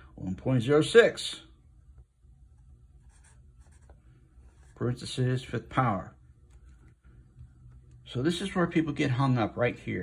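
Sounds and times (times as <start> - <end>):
marker scratching on paper: 2.9 - 5.0.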